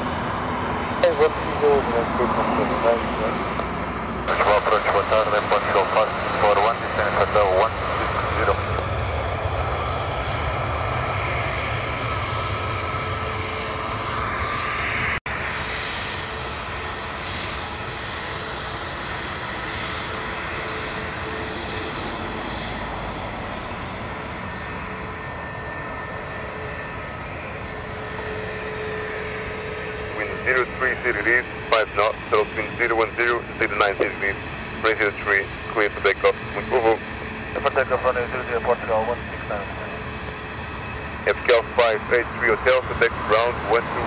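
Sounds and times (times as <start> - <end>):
jet engine whine at low power: 0.0 - 44.0
jet engines rumbling: 0.0 - 44.0
radio speech: 1.0 - 3.6, 4.2 - 9.1, 30.1 - 40.0, 41.2 - 44.0.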